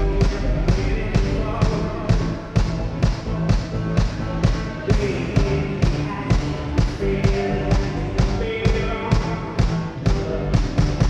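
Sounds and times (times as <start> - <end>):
electronic pop band playing: 0.0 - 11.0
kick drum beat: 0.0 - 11.0.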